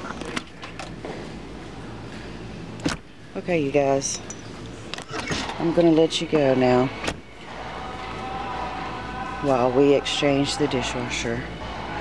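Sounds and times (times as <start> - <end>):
machine hum with whine: 0.0 - 12.0.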